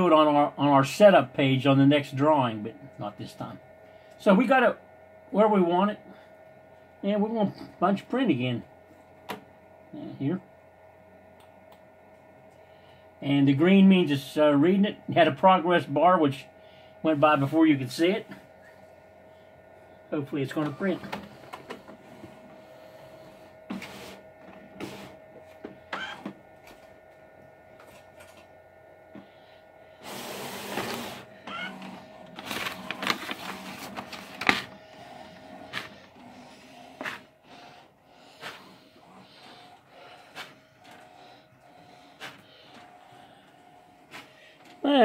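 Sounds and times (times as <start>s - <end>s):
printer hum: 0.0s - 45.0s
noisy printer mechanism: 20.2s - 26.9s, 30.0s - 45.0s.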